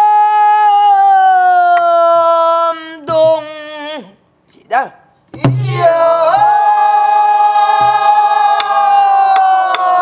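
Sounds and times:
group singing a held note: 0:05.4 - 0:10.0.

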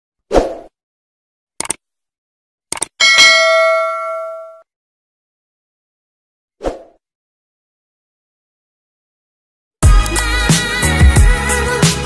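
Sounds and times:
bell ding: 0:03.0 - 0:04.6.

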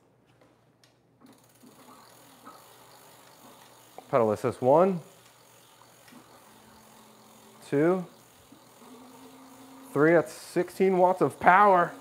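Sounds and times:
faint mechanical whirring: 0:01.2 - 0:12.0
ratchet-like ticking of bike wheel: 0:01.2 - 0:12.0.

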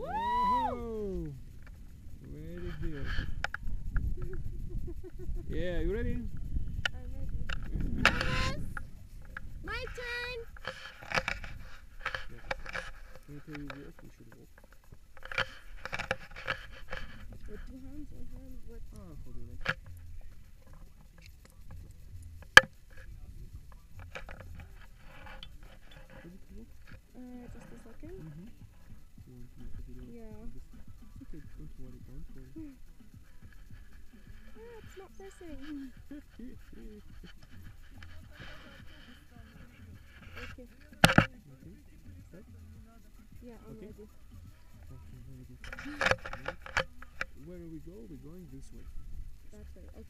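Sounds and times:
wind buffeting microphone: 0:00.0 - 0:25.6
low rumble of breeze: 0:00.0 - 0:50.0.

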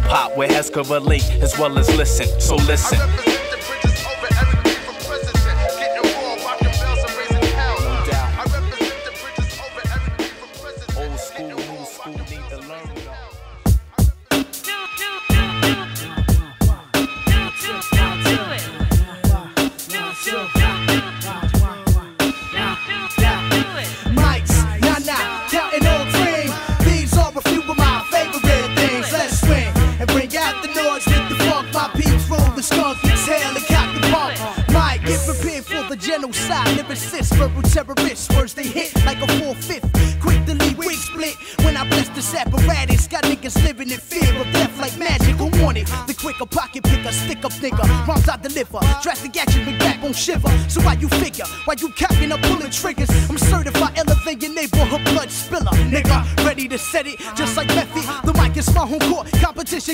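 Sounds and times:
hip-hop beat with heavy kick: 0:00.0 - 0:59.9
rapped vocals: 0:00.0 - 0:59.9.

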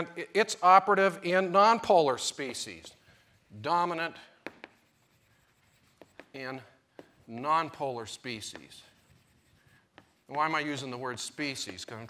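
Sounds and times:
chalk writing on blackboard: 0:02.4 - 0:12.0
chalk tapping on board: 0:04.4 - 0:10.8.

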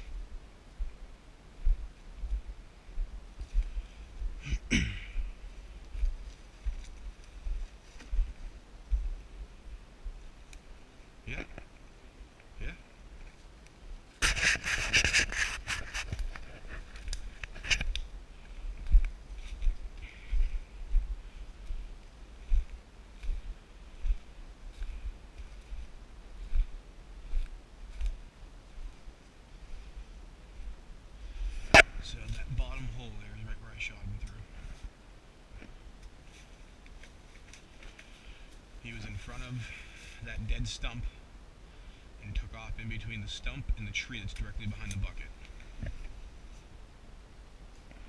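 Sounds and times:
leaves and brush crackling: 0:00.0 - 0:42.1, 0:44.1 - 0:48.0
background hiss: 0:00.0 - 0:48.0.

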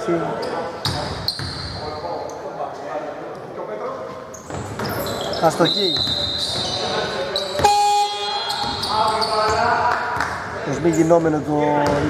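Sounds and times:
players' voices: 0:00.0 - 0:12.0
basketball bouncing on court: 0:04.4 - 0:05.1, 0:07.5 - 0:10.4, 0:11.8 - 0:12.0.

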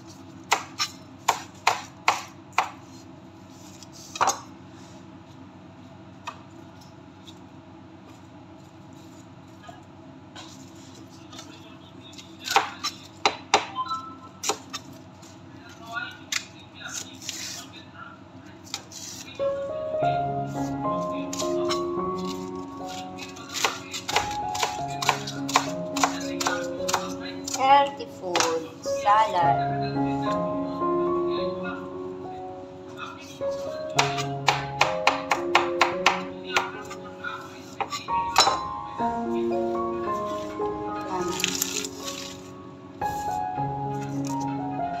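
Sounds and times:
knife chopping on plastic board: 0:00.5 - 0:02.8, 0:12.5 - 0:13.7, 0:23.4 - 0:27.6, 0:28.3 - 0:28.7, 0:34.0 - 0:37.0
knife cutting crunchy lettuce: 0:22.2 - 0:27.2, 0:41.3 - 0:42.4.

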